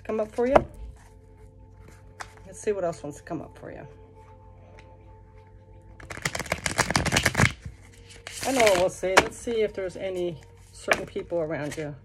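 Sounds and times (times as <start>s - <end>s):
cards being shuffled: 1.8s - 2.5s, 6.0s - 9.4s.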